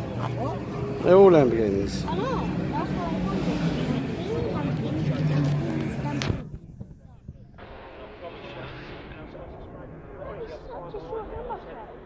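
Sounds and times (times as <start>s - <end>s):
voices: 0.0s - 12.0s.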